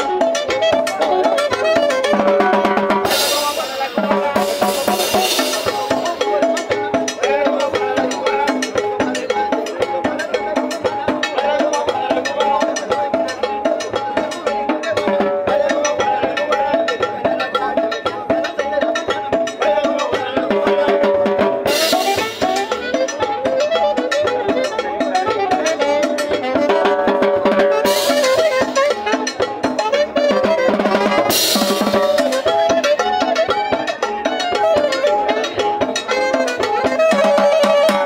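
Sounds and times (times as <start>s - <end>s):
live band playing dance music: 0.0s - 38.0s.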